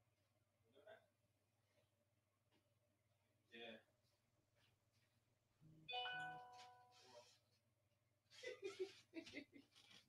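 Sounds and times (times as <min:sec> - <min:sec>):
bell-like chime: 0:05.9 - 0:07.0.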